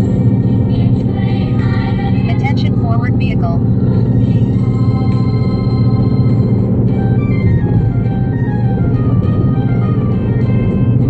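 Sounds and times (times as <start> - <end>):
car road and engine rumble: 0.0 - 11.0
music with descending notes: 4.7 - 11.0.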